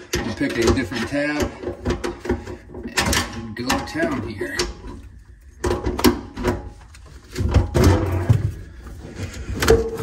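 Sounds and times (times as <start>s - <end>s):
metal scraping and rattling: 0.0s - 10.0s.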